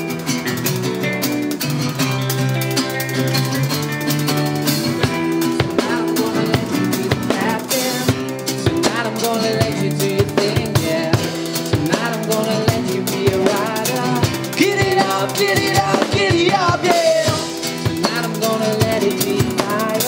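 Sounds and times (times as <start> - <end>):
drum kit: 0.0 - 20.0
strummed acoustic guitar: 0.0 - 20.0
man singing: 5.1 - 20.0.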